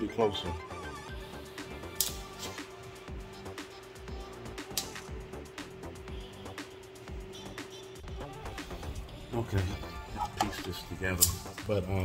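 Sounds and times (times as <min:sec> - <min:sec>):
low regular beat: 0:01.0 - 0:12.0.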